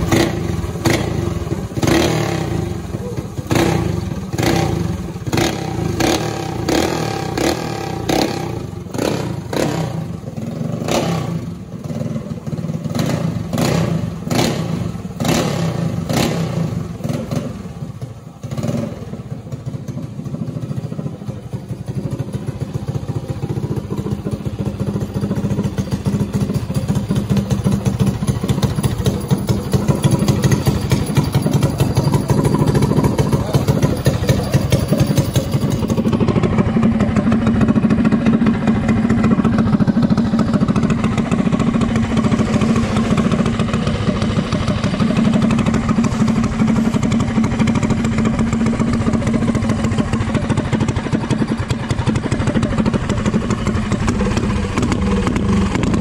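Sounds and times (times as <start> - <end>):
small engine revving: 0.0 - 17.6.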